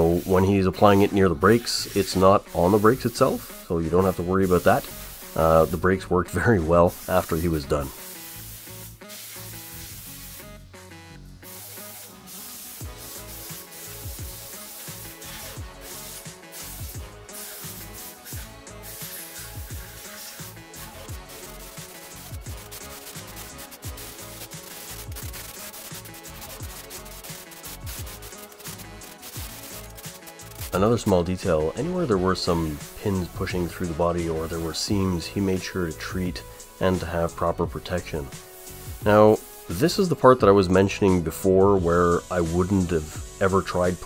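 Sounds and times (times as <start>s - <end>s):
compressed-air spray hissing: 0.0s - 40.4s
background music: 0.0s - 44.0s.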